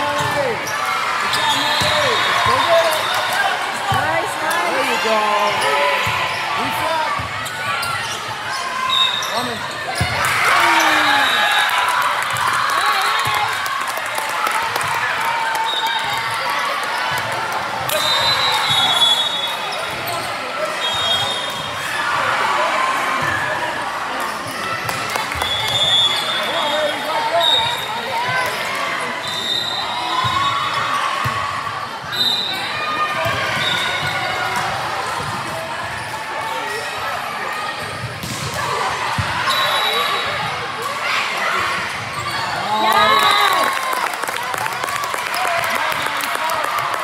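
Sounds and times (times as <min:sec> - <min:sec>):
sneaker squeaks on court floor: 0:00.2 - 0:03.3, 0:07.2 - 0:10.3, 0:17.9 - 0:21.8, 0:41.9 - 0:42.7
balls bouncing and being hit: 0:37.9 - 0:39.4.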